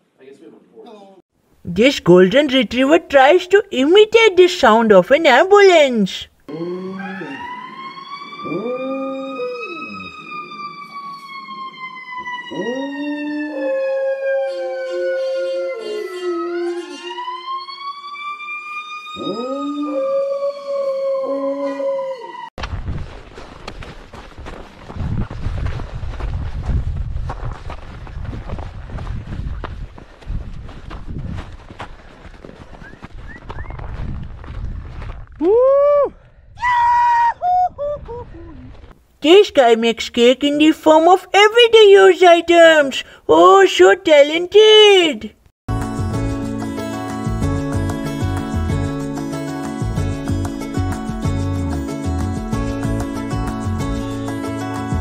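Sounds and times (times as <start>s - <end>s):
dog howling: 6.5s - 17.6s, 19.1s - 22.5s
siren wailing: 6.5s - 22.5s
wind rumbling on microphone: 22.6s - 39.0s.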